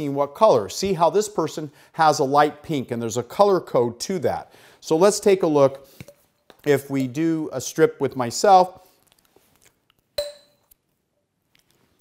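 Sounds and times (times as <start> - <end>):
sharp tap with ringing tone: 10.2 - 10.7.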